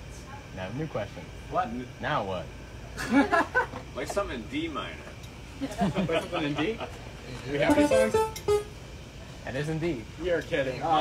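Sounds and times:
electronic keyboard notes: 7.6s - 8.8s
person speaking: 7.7s - 8.6s.

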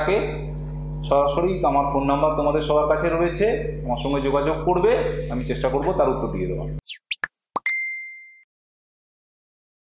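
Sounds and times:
electronic sweeping blips: 6.8s - 7.3s
electronic pop: 6.8s - 7.9s
ringing ding: 7.6s - 8.5s.

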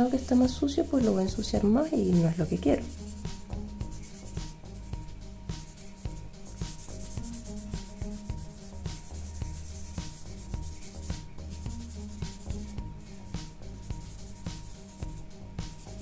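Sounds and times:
blending stump rubbing on paper: 2.2s - 5.0s, 5.6s - 16.0s.

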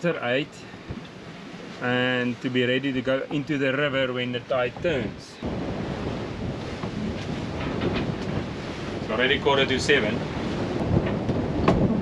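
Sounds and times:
sea noise: 0.0s - 12.0s
wind on microphone: 4.7s - 12.0s.

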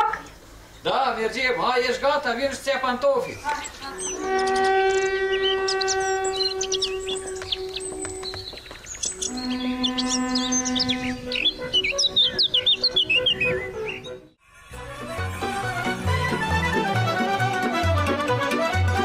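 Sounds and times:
songbirds chirping: 0.0s - 14.4s
long held musical notes: 9.2s - 19.0s.

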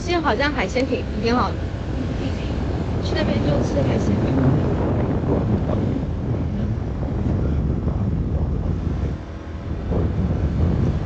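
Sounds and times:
scooter engine and road noise: 0.0s - 11.0s
wind buffeting microphone: 0.0s - 11.0s.

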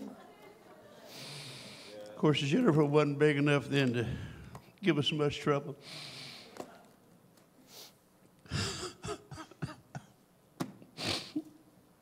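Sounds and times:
man breathing in close to microphone: 4.0s - 4.7s, 5.8s - 6.6s.

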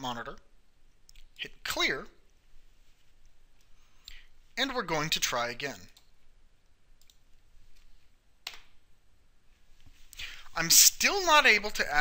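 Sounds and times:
low room hiss: 0.0s - 12.0s
computer mouse clicks: 7.0s - 7.2s.

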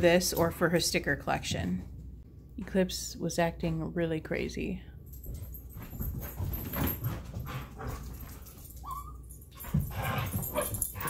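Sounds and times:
dog paws scrambling on carpet: 5.2s - 11.0s
dog whining: 8.8s - 11.0s.

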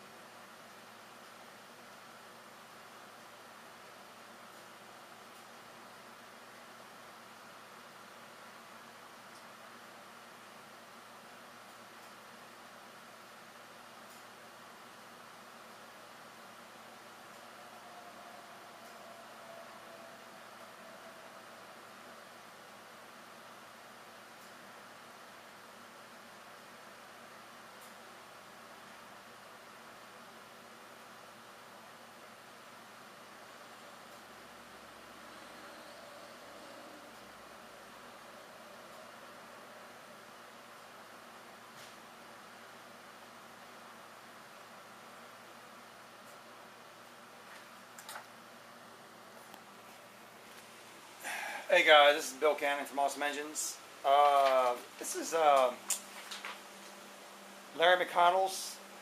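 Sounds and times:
faint room tone hiss: 0.0s - 59.0s.

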